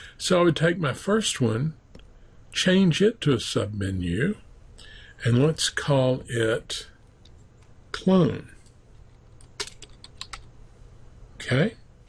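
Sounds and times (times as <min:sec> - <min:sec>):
keyboard typing: 0:09.3 - 0:10.5.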